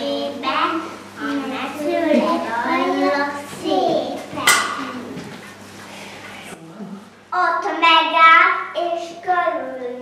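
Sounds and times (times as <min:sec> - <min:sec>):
young child speaking: 0:00.0 - 0:05.3, 0:07.3 - 0:10.0.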